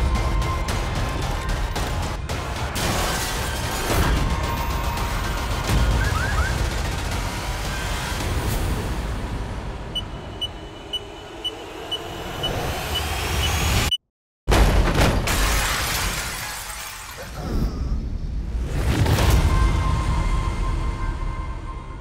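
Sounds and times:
loud boom with shattering: 14.5s - 18.0s.

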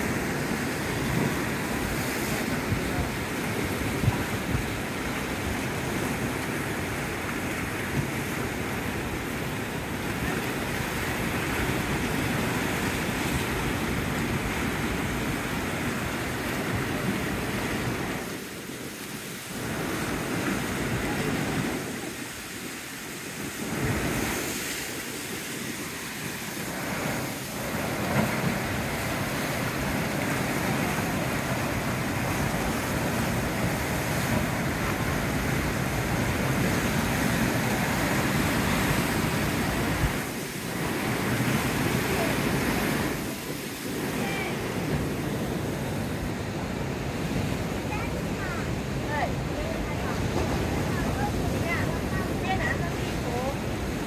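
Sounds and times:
waves breaking over rocks: 0.0s - 54.0s.

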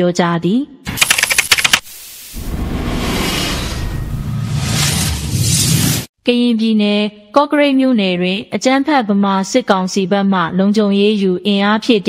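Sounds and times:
rapid sharp clicks: 0.9s - 1.9s.

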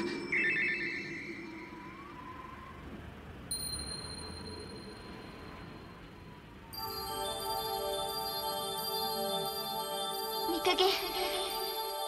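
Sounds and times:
trilling electronic ringing tone: 0.0s - 2.7s
faint steady high tone: 0.0s - 12.0s.

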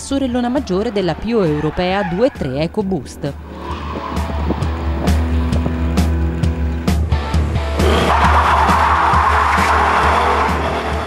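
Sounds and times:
tyres squealing and skidding: 0.0s - 5.4s, 7.7s - 11.0s
background music with steady beat: 0.0s - 11.0s.

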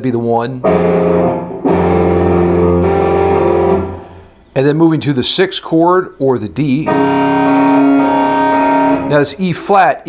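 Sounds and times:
electric guitar chord ringing: 0.6s - 4.4s, 6.8s - 9.4s.

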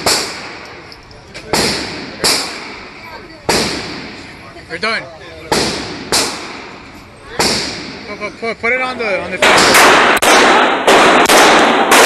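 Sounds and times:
gunshots echoing indoors: 9.4s - 12.0s.

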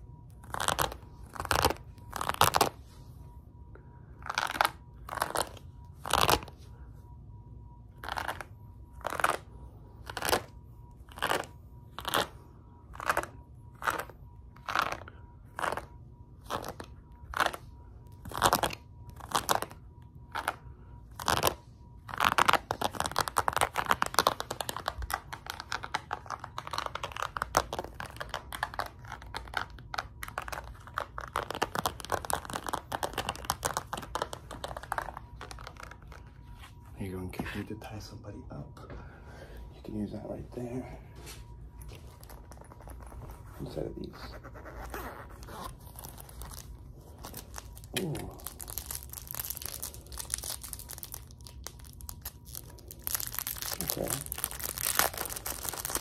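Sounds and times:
faint steady high tone: 0.0s - 49.2s.

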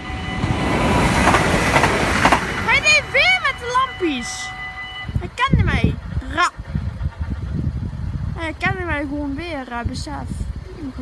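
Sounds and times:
train rumble: 0.0s - 11.0s
high-pitched wordless calls: 2.6s - 6.8s.

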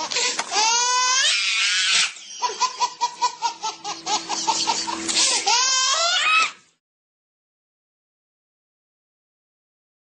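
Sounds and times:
baby laughing: 0.0s - 6.6s
baby squealing with laughter: 0.0s - 6.6s.

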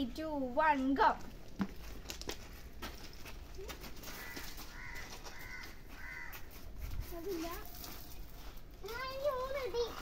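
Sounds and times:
crow cawing: 4.1s - 6.5s
child's voice: 7.0s - 7.7s, 8.8s - 10.0s.

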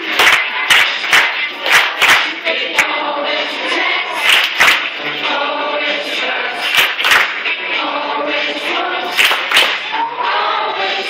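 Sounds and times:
handclaps: 0.0s - 2.9s, 4.2s - 5.0s, 6.6s - 7.6s, 9.1s - 9.9s
group singing: 0.0s - 11.0s.

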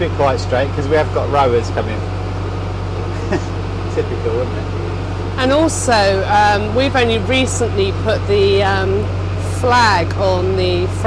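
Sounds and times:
boat engine humming: 0.0s - 11.0s
person laughing: 3.1s - 3.6s.

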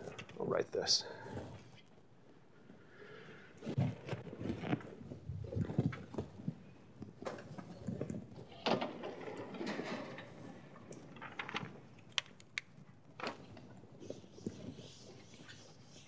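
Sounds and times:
chalk scratching on blackboard: 14.0s - 16.0s.

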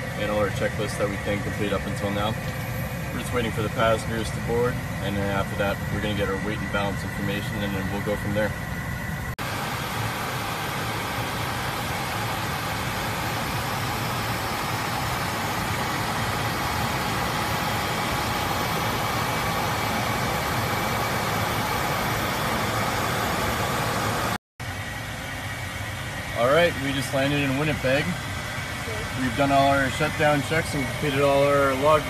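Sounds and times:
jet cockpit airflow and engine noise: 0.0s - 32.0s
quieter steady hum: 0.0s - 32.0s.

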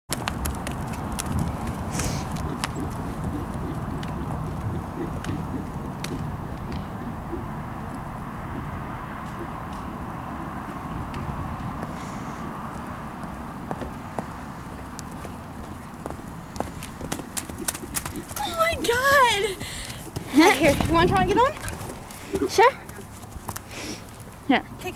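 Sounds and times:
horse hooves thudding on dirt: 0.1s - 12.0s, 12.6s - 24.4s.

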